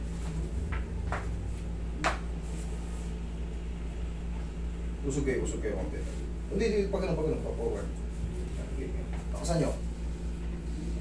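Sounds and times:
air conditioner hum: 0.0 - 11.0.

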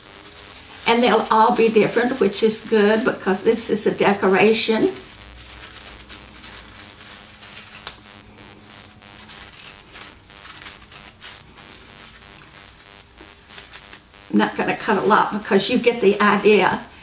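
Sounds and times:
paper rustling: 0.2 - 3.0, 5.4 - 8.0.

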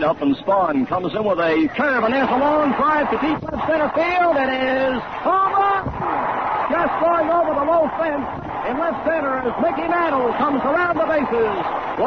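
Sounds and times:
crowd noise: 0.0 - 12.0
man announcing: 0.0 - 12.0.

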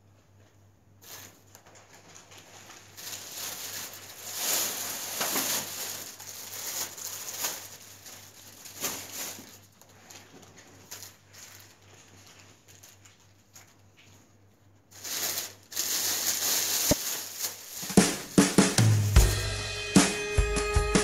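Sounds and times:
groceries being handled: 0.2 - 19.2
plastic bags rustling: 0.4 - 19.4.

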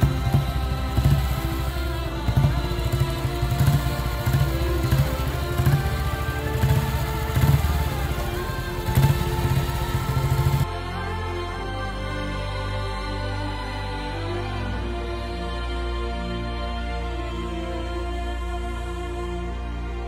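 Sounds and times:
single-cylinder motorcycle engine running: 0.0 - 10.7
background music: 0.0 - 20.0.

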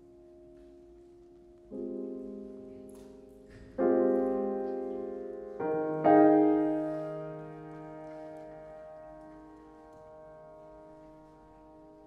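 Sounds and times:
grand piano chord: 0.0 - 12.0.

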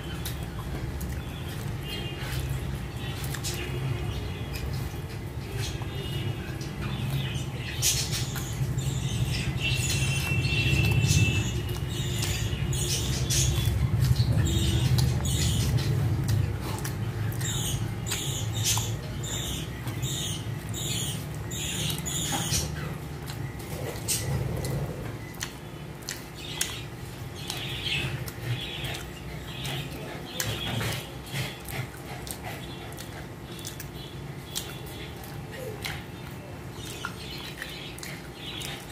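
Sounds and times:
chewing and lip-smacking: 0.0 - 38.9
steady low hum: 0.0 - 38.9.

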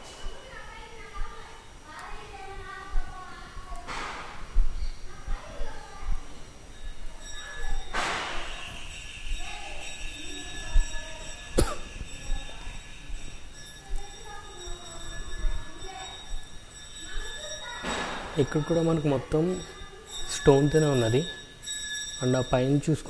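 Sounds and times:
distant echoing voices: 0.0 - 23.0.

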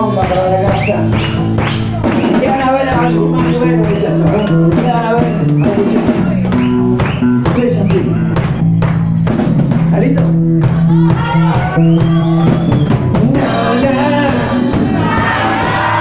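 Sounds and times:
live rock band playing: 0.0 - 16.0
drum hits: 0.6 - 16.0.

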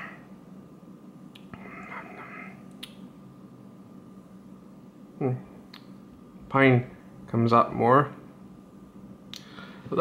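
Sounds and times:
lip clicks: 1.3 - 1.5, 2.7 - 3.0.

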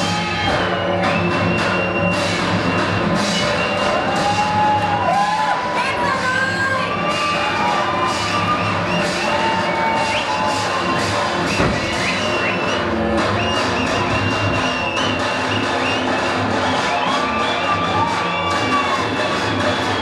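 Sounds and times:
audience cheering and shouting: 0.0 - 20.0
loud dance music: 0.0 - 20.0
high whoops: 3.6 - 12.6, 16.8 - 19.3.

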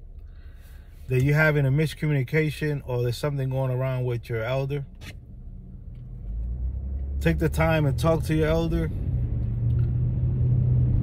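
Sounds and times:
car interior rumble: 0.0 - 11.0.

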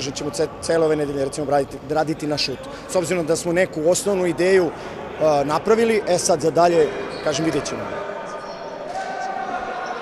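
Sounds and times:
people cheering: 8.8 - 10.0.

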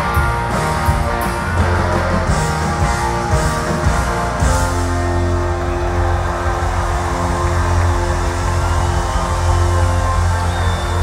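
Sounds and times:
rock band holding a chord: 0.0 - 11.0.

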